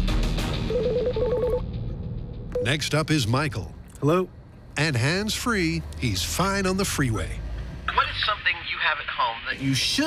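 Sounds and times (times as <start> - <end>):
background music: 0.0 - 3.3
electronic telephone ringtone: 0.7 - 1.6.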